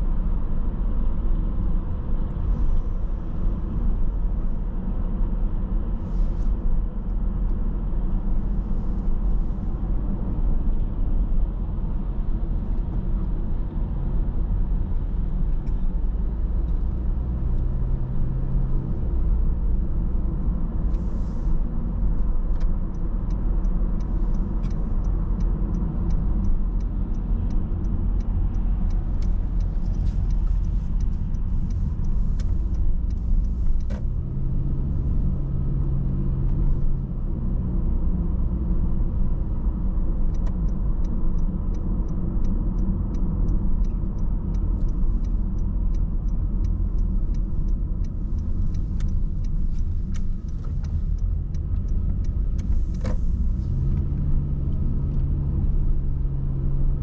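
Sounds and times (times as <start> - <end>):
car engine and road rumble: 0.0 - 57.0.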